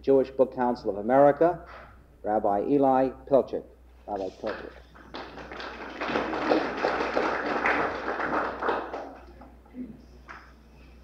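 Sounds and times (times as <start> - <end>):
audience applauding: 4.5 - 9.4.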